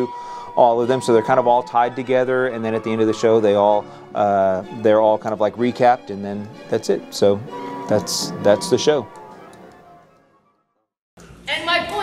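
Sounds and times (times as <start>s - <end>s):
soft background music: 0.0s - 10.7s.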